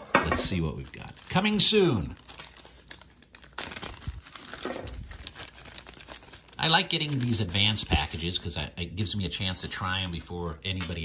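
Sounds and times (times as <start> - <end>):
plastic wrapper crinkling: 0.4 - 8.6
plastic wrapper tearing: 0.4 - 8.6.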